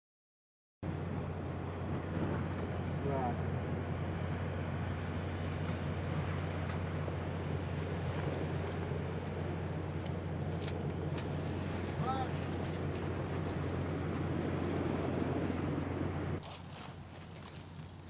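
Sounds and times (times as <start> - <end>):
low hum and rumble: 0.8 - 18.0
night insects chirping: 1.0 - 16.4.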